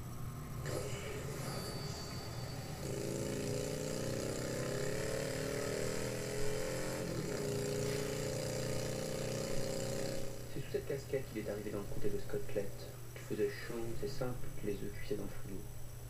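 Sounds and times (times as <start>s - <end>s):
motorcycle engine accelerating: 0.0s - 12.9s.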